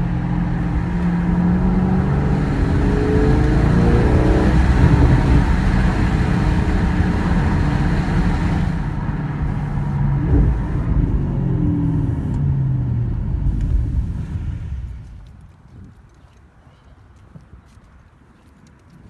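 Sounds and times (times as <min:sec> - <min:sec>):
car engine heard from inside: 0:00.0 - 0:15.3.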